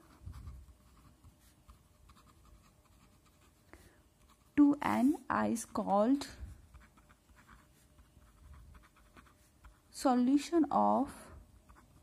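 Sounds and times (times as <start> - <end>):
pen scratching on paper: 0.0 - 3.6, 4.2 - 10.0, 11.6 - 12.0
person speaking: 4.4 - 6.8, 9.8 - 11.4.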